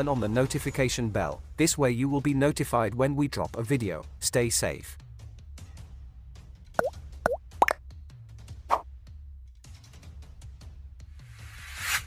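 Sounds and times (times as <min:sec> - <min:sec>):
cartoon bloop pops: 0:06.8 - 0:07.8.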